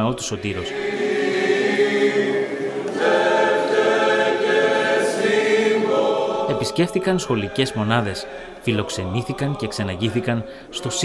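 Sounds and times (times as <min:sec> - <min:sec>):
choir singing a hymn unaccompanied: 0:00.2 - 0:11.0.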